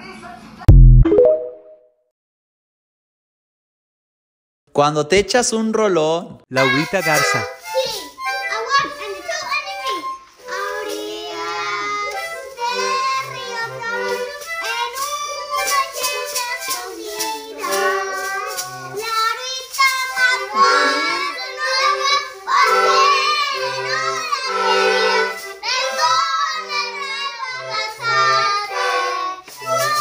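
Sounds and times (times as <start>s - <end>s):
child's voice: 6.6s - 10.2s
toy accordion: 6.6s - 30.0s
toy harmonica: 6.6s - 30.0s
girls singing together: 10.4s - 30.0s.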